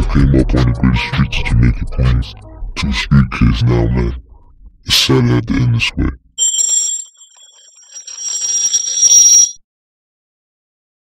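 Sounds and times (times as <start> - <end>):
high metallic ringing and rattling: 6.4 - 9.6.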